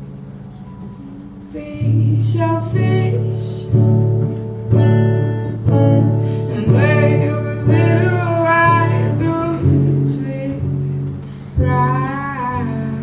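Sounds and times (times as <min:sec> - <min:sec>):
acoustic guitar strummed chords: 0:00.0 - 0:13.0
woman singing: 0:01.0 - 0:03.9, 0:06.0 - 0:10.8, 0:11.6 - 0:13.0.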